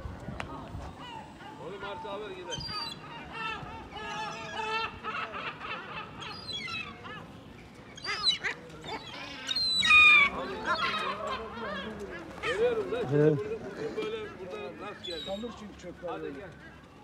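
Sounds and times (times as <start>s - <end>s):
gulls calling: 0.9s - 16.8s.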